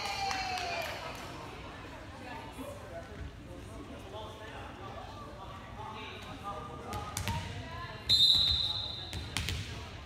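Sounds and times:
volleyball bouncing on gym floor: 6.9s - 7.6s, 8.3s - 10.0s
referee's whistle blast: 8.1s - 9.1s.

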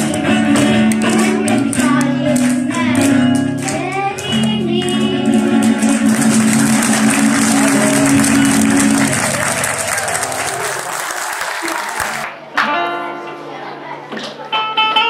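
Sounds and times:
music: 0.0s - 10.6s, 12.5s - 15.0s
audience applauding: 4.8s - 12.4s.

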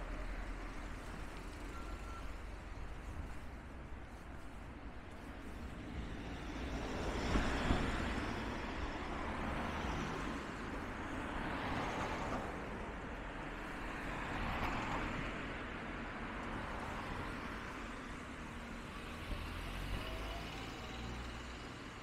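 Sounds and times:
cars driving past: 5.5s - 22.0s.

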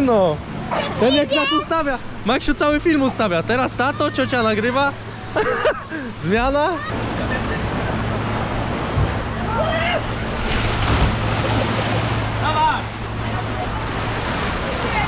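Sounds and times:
low hum: 6.9s - 15.0s
water rushing down a slide: 9.0s - 12.6s.

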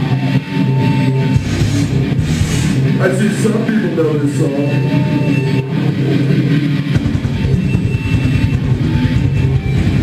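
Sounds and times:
bass and drums: 0.0s - 10.0s
distorted electric guitars: 0.0s - 10.0s.

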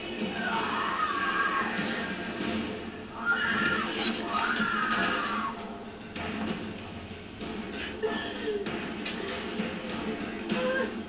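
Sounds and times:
tense score music: 0.0s - 11.0s
long rising and falling cries: 0.3s - 2.2s, 3.2s - 5.6s.

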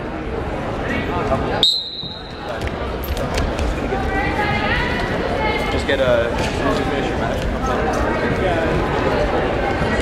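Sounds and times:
voices chattering: 0.0s - 10.0s
referee's whistle blast: 1.6s - 2.4s.

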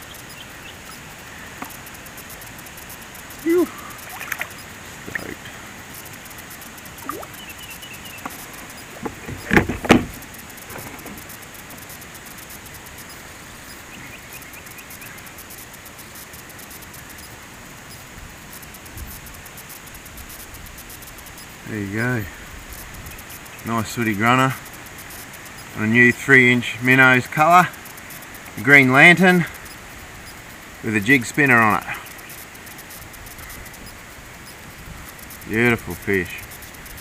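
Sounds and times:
steady hiss: 0.0s - 37.0s
fish splashing in water: 3.5s - 5.5s, 6.9s - 7.5s.

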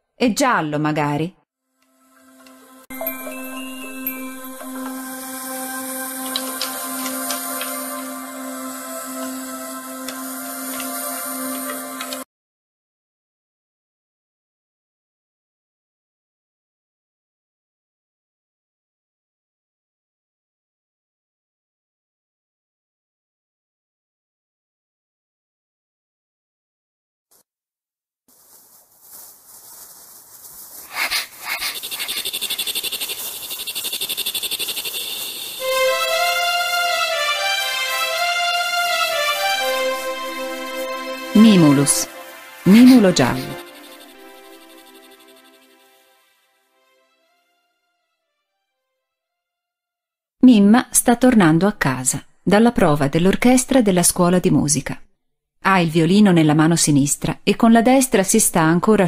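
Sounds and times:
background music with held notes: 1.8s - 12.3s, 35.6s - 48.6s
rapidly pulsing animal calls: 30.7s - 36.3s, 42.6s - 46.1s
short loud animal calls: 30.9s - 35.6s.

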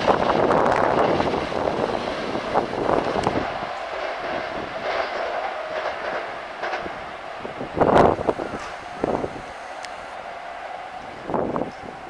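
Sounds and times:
train wheels clattering over rails: 0.0s - 12.0s.

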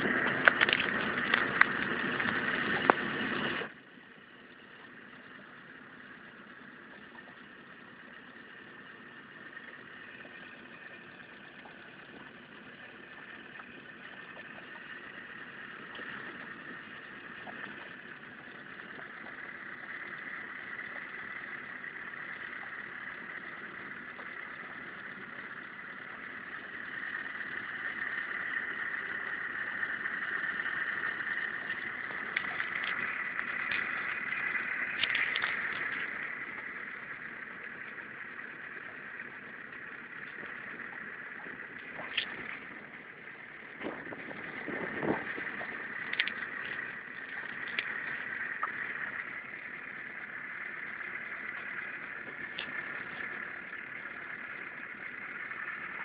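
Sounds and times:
outboard motor running: 0.0s - 56.0s
loud rough noise: 43.7s - 49.6s.

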